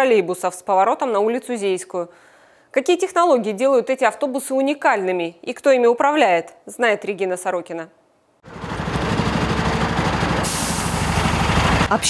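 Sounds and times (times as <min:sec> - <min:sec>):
bus engine running: 0:08.4 - 0:12.0
compressed air hiss: 0:10.4 - 0:11.1.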